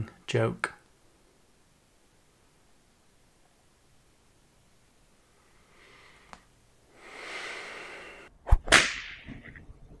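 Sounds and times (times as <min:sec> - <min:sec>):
whip swish: 0:08.4 - 0:09.3
whip crack: 0:08.5 - 0:09.3.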